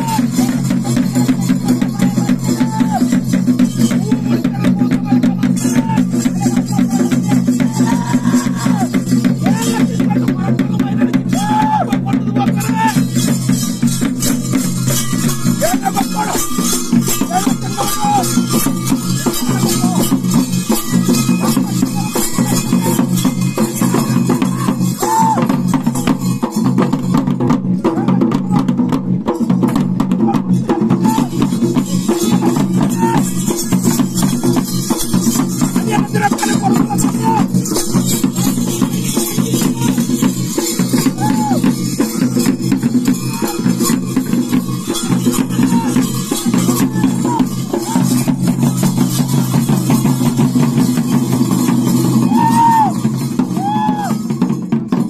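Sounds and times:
barrel drums beaten fast: 0.0 - 55.0.

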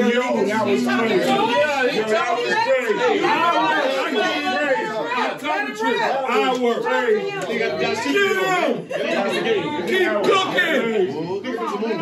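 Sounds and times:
men talking and calling out: 0.0 - 12.0.

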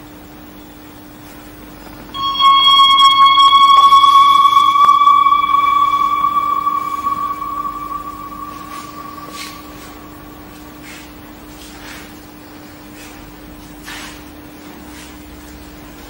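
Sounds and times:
bell-like tone ringing: 2.2 - 11.2.

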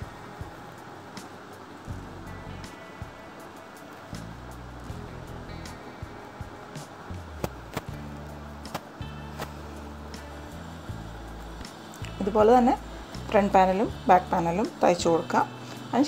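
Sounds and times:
background music: 0.0 - 16.0
fabric handling: 7.2 - 8.0, 8.7 - 9.6.

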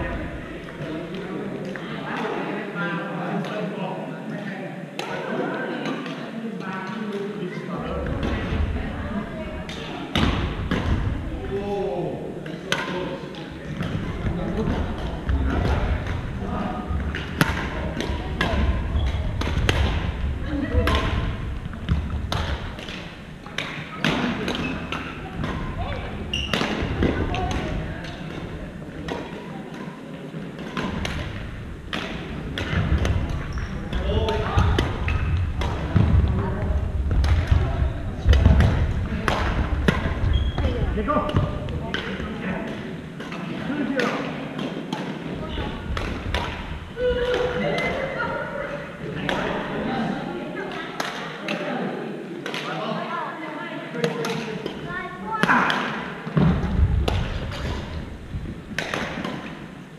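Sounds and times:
indistinct voices: 0.0 - 59.9
racket striking shuttlecock: 26.3 - 30.0, 58.8 - 59.6.

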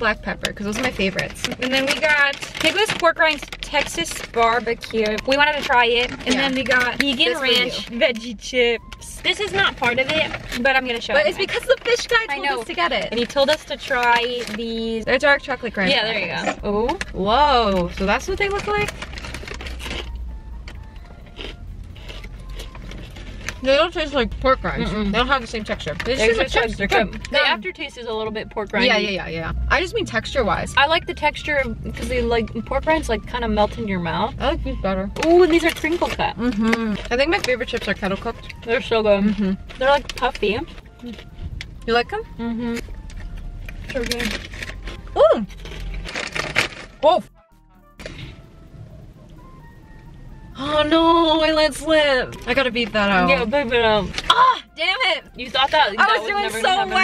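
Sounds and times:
foil chip bag crackling: 0.7 - 8.2, 17.7 - 23.6, 43.8 - 47.1
crisp snack crunching: 18.3 - 23.6, 42.8 - 47.1
crunchy chips being chewed: 18.9 - 23.6.

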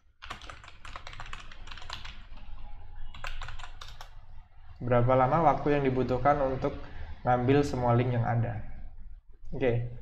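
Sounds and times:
typing on computer keyboard: 0.2 - 2.4, 3.1 - 4.2.

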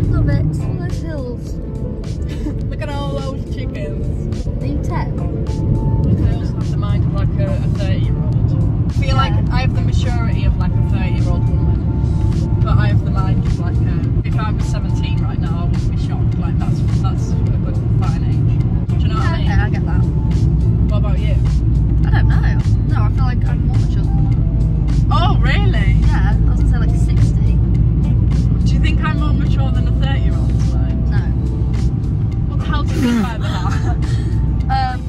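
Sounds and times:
women talking: 0.0 - 1.6, 2.3 - 11.8, 12.6 - 20.1, 20.9 - 24.3, 32.4 - 35.0
car cabin road rumble: 0.0 - 35.0
music playing: 0.0 - 35.0
women laughing: 2.2 - 2.6, 32.9 - 34.1.

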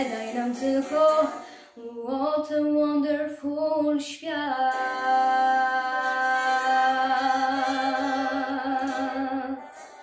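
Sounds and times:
girl singing: 0.0 - 10.0.

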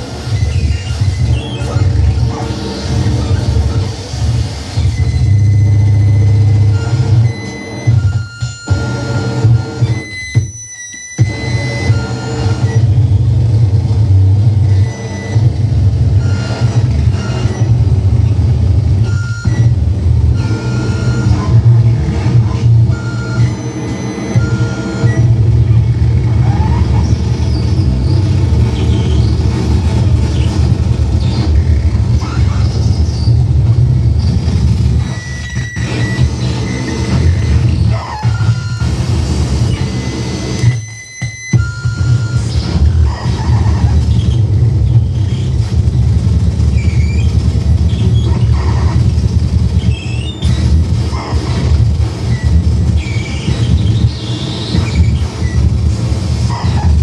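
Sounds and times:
high steady electronic tones: 0.0 - 57.0.

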